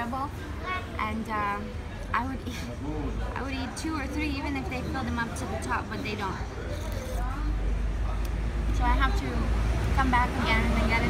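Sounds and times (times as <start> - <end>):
road traffic engine rumble: 0.0 - 11.0.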